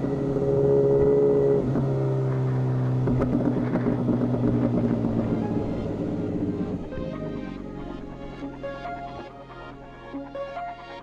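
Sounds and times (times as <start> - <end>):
motorcycle engine while riding: 0.0 - 9.9.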